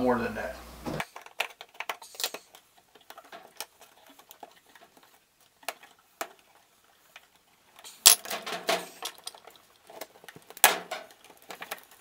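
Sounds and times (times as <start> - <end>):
wires rattling in metal box: 1.0 - 6.6, 7.2 - 12.0.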